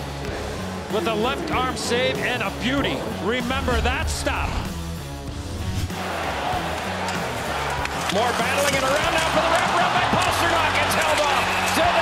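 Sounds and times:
arena crowd hum: 5.8 - 12.0.

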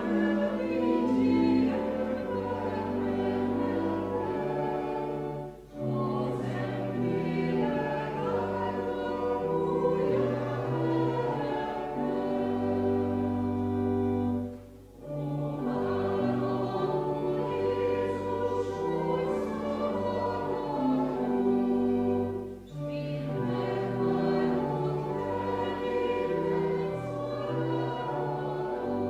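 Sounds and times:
congregation singing a hymn: 0.0 - 29.0.

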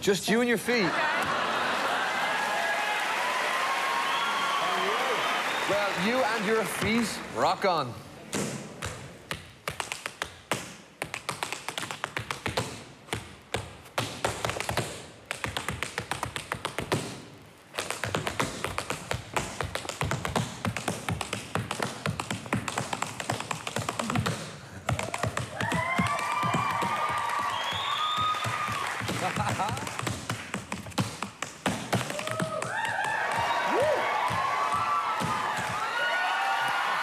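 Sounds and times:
audience shouting: 0.9 - 6.0
tap shoes on wooden stage: 5.7 - 7.7, 8.3 - 37.0.

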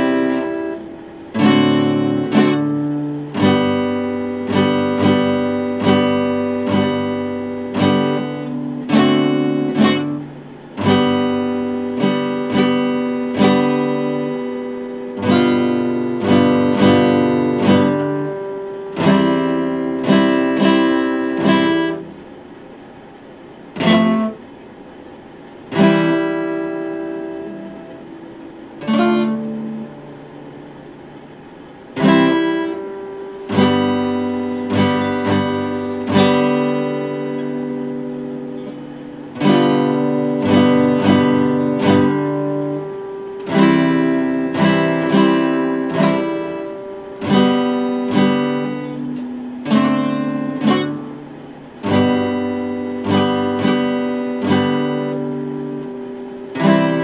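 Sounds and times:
acoustic guitar strummed in chords: 0.0 - 57.0.

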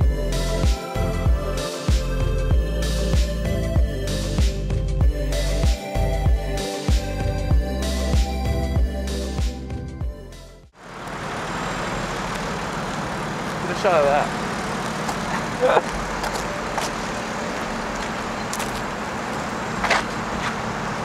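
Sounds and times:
cars passing on street: 10.7 - 21.0
voices: 12.1 - 19.2.

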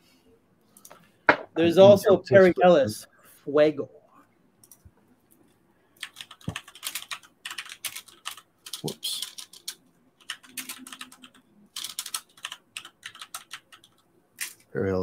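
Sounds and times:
typing on computer keyboard: 6.0 - 14.6.

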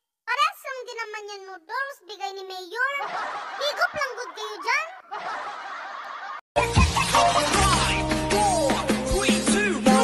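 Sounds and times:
loud music with heavy bass: 6.6 - 10.0.

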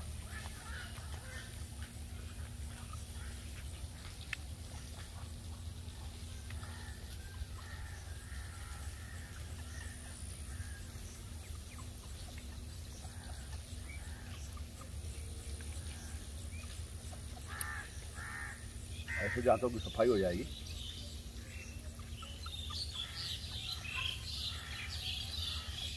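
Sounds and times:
steady low rumble: 0.0 - 19.2
birds calling: 0.0 - 25.9.

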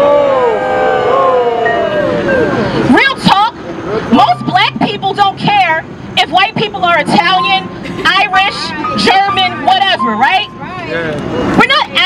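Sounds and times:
woman speaking over loudspeaker: 2.9 - 3.5, 4.1 - 10.9, 11.6 - 12.0.

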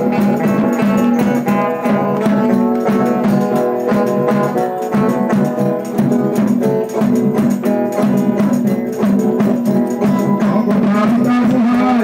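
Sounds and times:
folk music on string instruments: 0.0 - 12.0.

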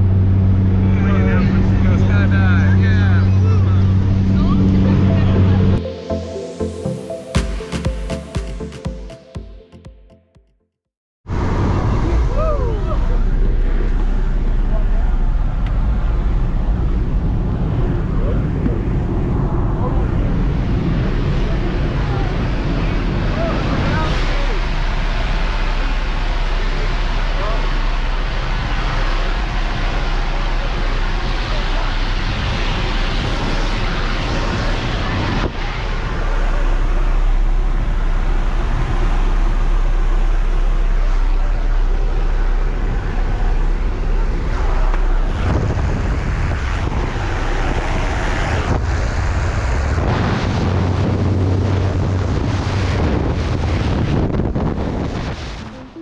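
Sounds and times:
rushing wind: 0.0 - 5.8, 11.2 - 56.0
plane engine and propeller drone: 0.0 - 7.4, 11.3 - 56.0.

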